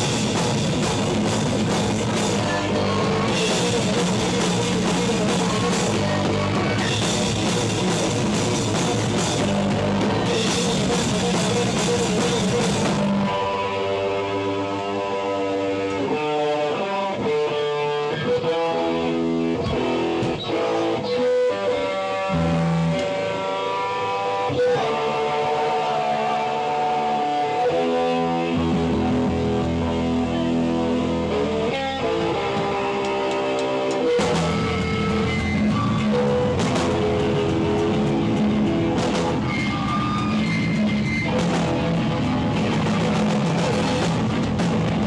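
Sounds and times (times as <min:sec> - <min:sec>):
drums: 0:00.0 - 0:45.0
electric guitar notes: 0:00.0 - 0:45.0.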